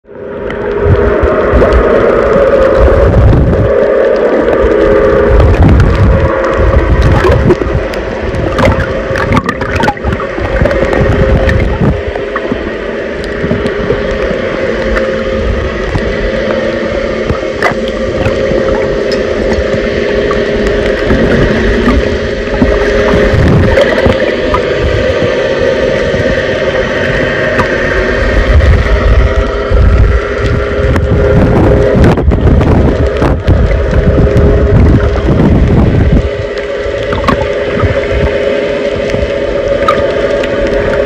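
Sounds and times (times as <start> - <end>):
heavy low rumbles: 0.0 - 41.0
muffled rushing gurgling water: 0.0 - 41.0
steady low hum: 0.0 - 41.0.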